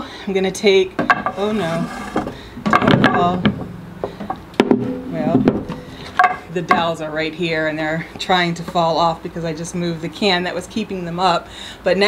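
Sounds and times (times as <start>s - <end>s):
wooden knocks: 2.2s - 6.9s.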